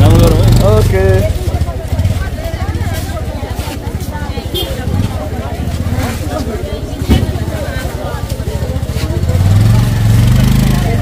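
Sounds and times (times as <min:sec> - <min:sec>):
market crowd chatter: 0:00.0 - 0:11.0
motorcycle engine running: 0:00.0 - 0:11.0.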